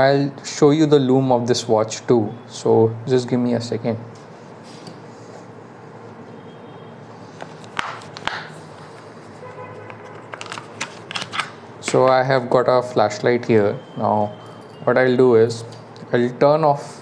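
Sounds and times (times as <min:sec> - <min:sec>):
steady room hum: 0:00.0 - 0:17.0.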